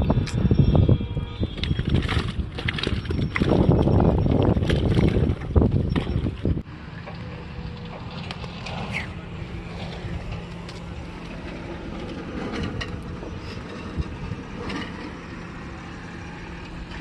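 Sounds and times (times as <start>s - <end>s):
wind rumble on microphone: 0.0s - 6.7s, 7.7s - 17.0s.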